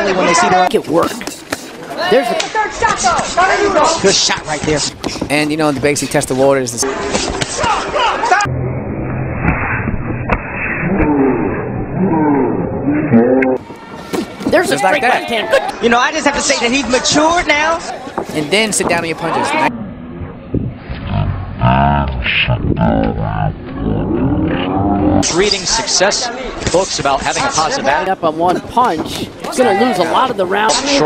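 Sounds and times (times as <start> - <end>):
low hum: 8.4 - 13.6, 19.7 - 25.2
deep growling voice: 10.8 - 13.6, 19.6 - 25.3.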